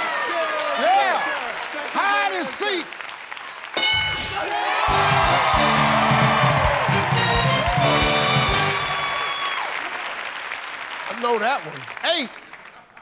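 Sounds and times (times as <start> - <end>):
audience applauding: 0.0 - 13.0
band music cue with chords: 4.2 - 9.1.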